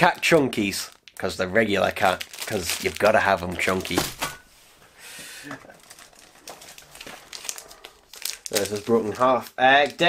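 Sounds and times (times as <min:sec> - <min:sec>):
packaging rustling: 0:00.0 - 0:04.5, 0:05.6 - 0:10.0.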